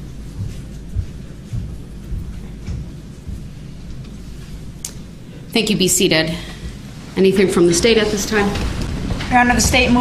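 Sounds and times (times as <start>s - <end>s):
people moving with thumps: 0.0s - 4.8s, 6.6s - 10.0s
low room rumble: 0.0s - 10.0s.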